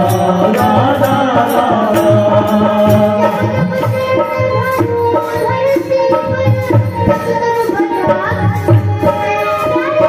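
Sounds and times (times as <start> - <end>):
people singing along: 0.0 - 5.8
man singing devotional song: 0.0 - 10.0
steady drum beat: 0.0 - 10.0.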